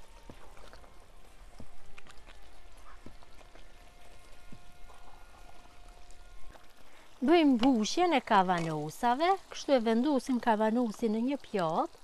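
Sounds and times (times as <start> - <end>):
simmering paste popping: 0.1 - 12.0.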